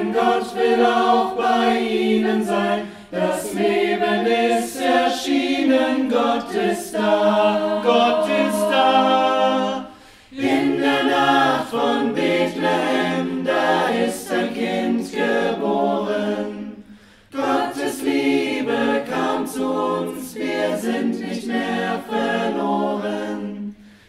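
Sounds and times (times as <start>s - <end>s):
choir singing a cappella: 0.0s - 24.0s.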